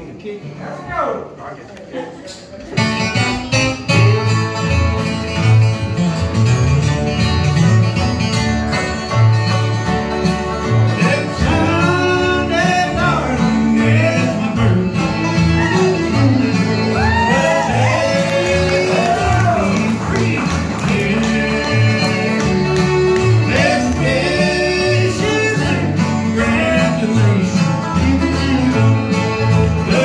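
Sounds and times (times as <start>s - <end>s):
acoustic guitars: 0.0s - 30.0s
banjo: 2.2s - 30.0s
fiddle: 2.8s - 30.0s.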